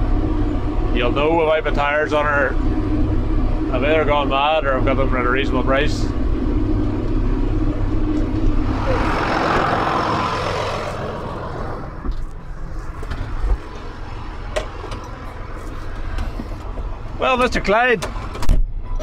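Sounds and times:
tractor diesel engine running: 0.0s - 19.0s
rushing noise: 6.1s - 14.5s.

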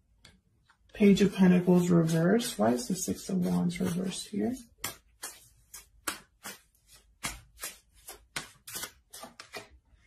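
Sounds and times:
cards being shuffled: 4.8s - 9.8s.

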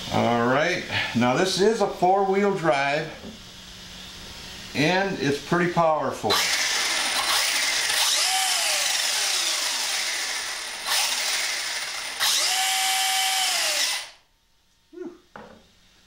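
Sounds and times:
electric motor whirring whine: 6.3s - 14.2s.

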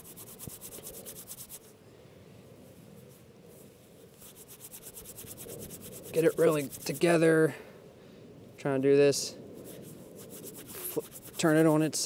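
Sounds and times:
bark rubbed between palms: 0.0s - 1.7s, 3.0s - 7.2s, 9.6s - 11.9s.

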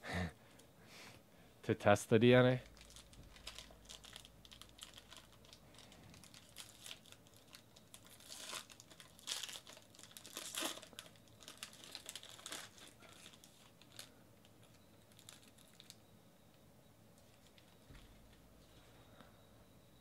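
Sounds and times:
foil wrapper crinkling: 2.6s - 16.0s.

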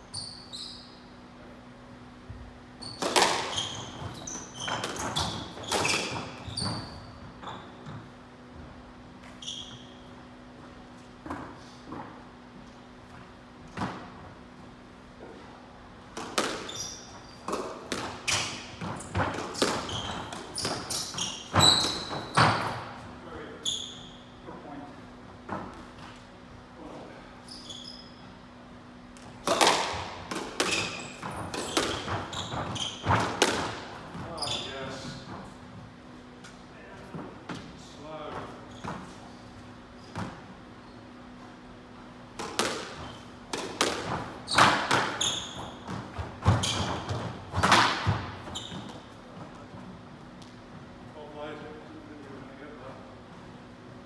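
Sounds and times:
sneakers squeaking on wooden floor: 0.0s - 1.1s, 2.3s - 14.5s, 16.2s - 26.2s, 27.3s - 28.5s, 29.3s - 50.8s
low ventilation hum: 0.0s - 54.0s
squash ball hitting rackets and walls: 2.4s - 8.3s, 15.1s - 23.1s, 29.0s - 40.7s, 41.6s - 50.7s.

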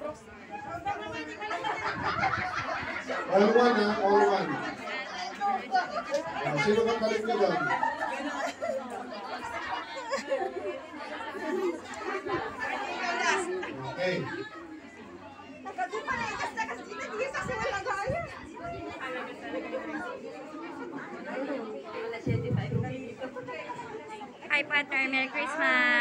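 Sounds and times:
crowd chatter echoing: 0.0s - 26.0s.

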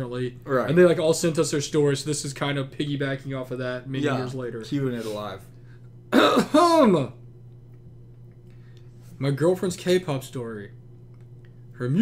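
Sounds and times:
man clearing his throat: 6.1s - 7.1s.

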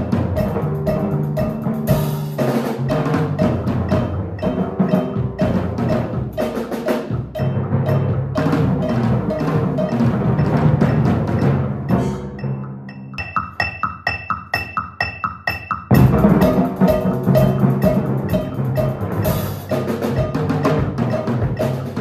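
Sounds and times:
timpani notes: 0.0s - 13.9s, 15.6s - 22.0s
rapid drum kit strikes: 0.0s - 22.0s.

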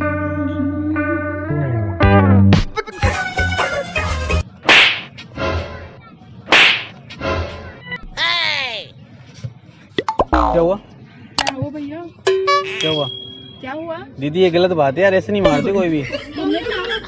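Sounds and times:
whip-crack swishes: 4.7s - 5.1s, 6.5s - 6.9s.

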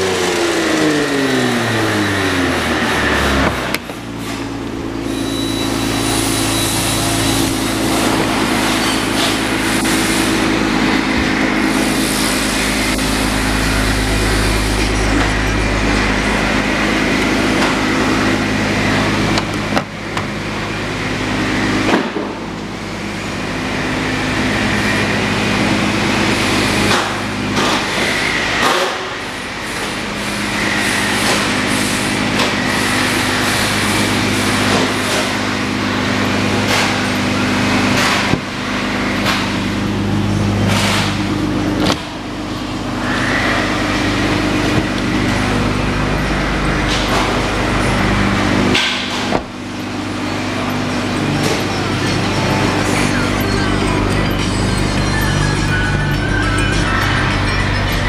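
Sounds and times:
low mechanical hum: 0.0s - 58.0s
car doors knocking and clunking: 49.2s - 49.7s.

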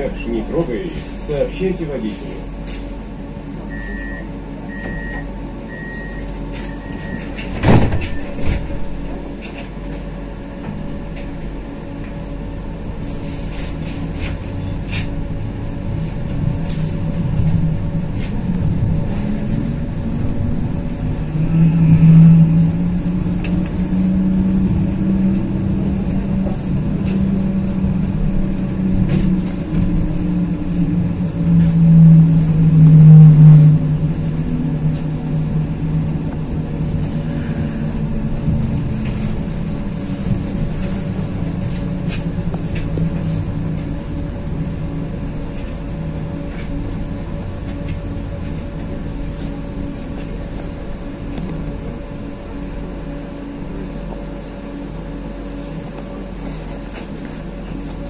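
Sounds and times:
tram motor tone: 0.0s - 58.0s
tram rumbling on rails: 0.0s - 58.0s.

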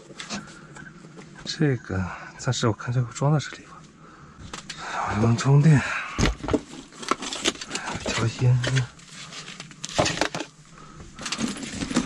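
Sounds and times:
rustling: 6.5s - 12.0s.

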